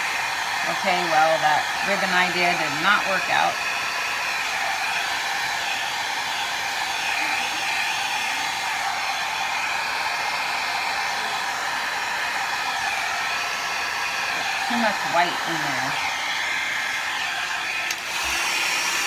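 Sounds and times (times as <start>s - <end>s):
hair dryer running: 0.0s - 19.0s.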